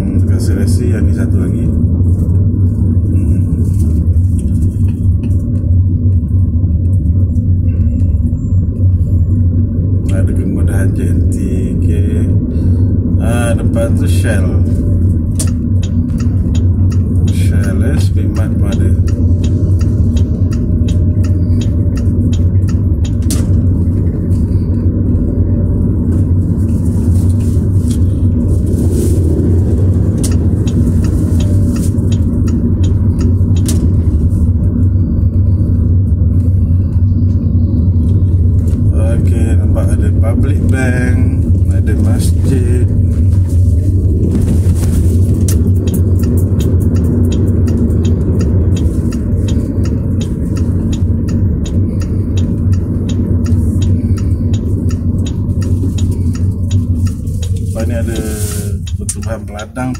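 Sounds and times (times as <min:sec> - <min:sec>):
car road and engine hum: 0:00.0 - 0:59.9.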